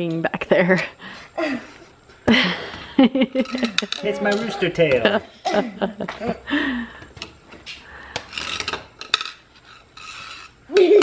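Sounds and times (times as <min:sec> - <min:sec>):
screwdriver scraping on stone: 0:08.3 - 0:10.6.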